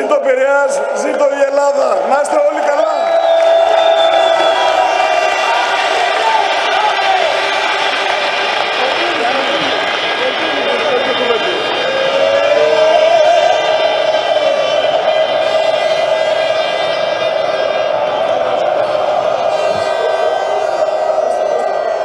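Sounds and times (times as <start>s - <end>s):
crowd chanting: 3.4s - 22.0s.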